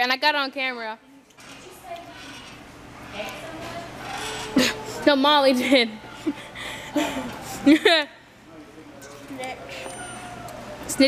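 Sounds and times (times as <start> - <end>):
faint indistinct voices: 1.1 - 11.0.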